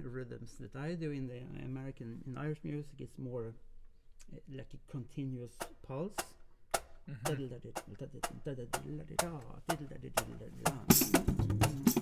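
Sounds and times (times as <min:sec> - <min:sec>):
drumstick clicks: 0:05.6 - 0:07.0
man singing wordless melody: 0:07.2 - 0:12.0.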